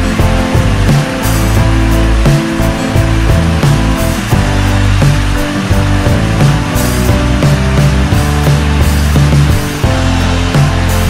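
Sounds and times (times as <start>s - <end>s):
music with deep bass and beat: 0.0s - 11.0s.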